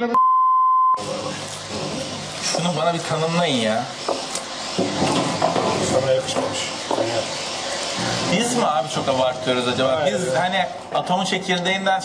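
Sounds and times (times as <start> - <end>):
electronic beep: 0.0 - 1.0.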